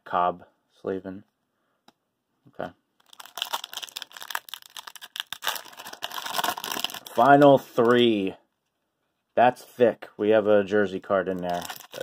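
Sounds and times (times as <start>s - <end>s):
foil wrapper crinkling: 3.0s - 7.4s, 11.3s - 12.0s.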